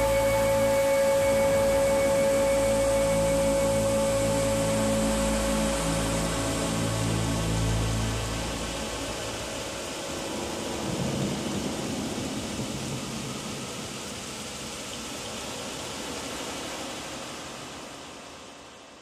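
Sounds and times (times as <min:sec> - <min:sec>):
dense wash of noise: 0:00.0 - 0:19.0
low sustained drone notes: 0:00.0 - 0:19.0.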